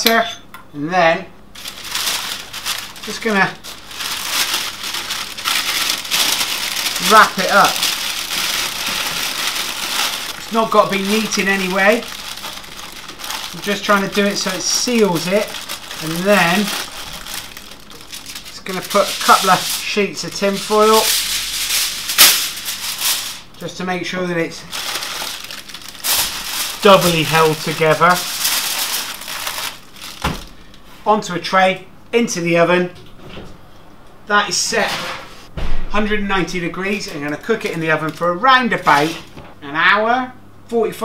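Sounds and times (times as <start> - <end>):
parchment paper crinkling: 1.6 - 23.7, 24.6 - 30.9, 36.4 - 39.6.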